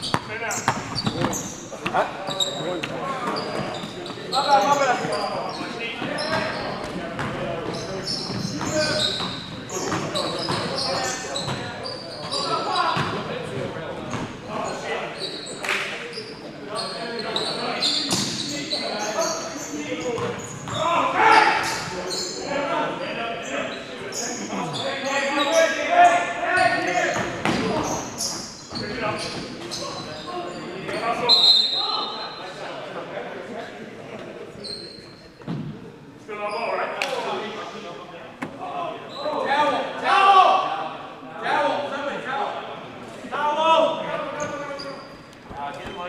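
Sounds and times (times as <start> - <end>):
basketball bouncing on gym floor: 0.0 - 2.0.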